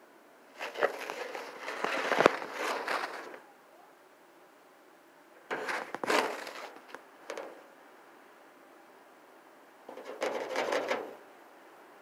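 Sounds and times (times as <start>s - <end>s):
rat scraping at enclosure: 0.6s - 3.4s, 5.5s - 7.6s, 9.9s - 11.2s.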